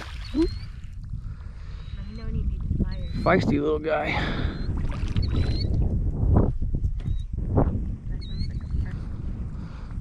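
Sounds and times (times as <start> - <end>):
wind and water rumble: 0.0 - 10.0.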